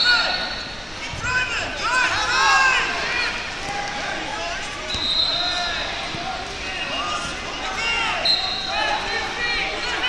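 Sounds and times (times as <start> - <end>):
referee whistle blast: 4.9 - 5.8.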